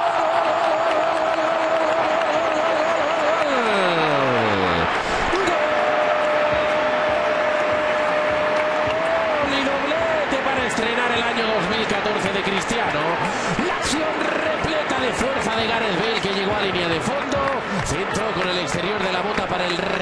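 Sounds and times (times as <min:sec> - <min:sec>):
stadium crowd cheering: 0:00.0 - 0:20.0.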